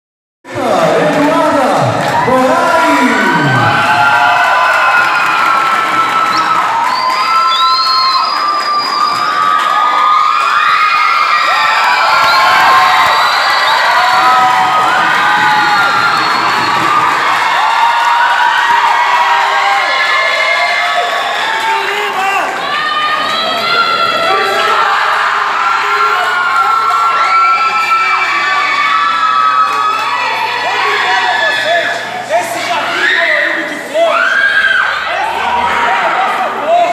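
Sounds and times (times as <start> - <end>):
crowd cheering and screaming: 0.5 - 36.9.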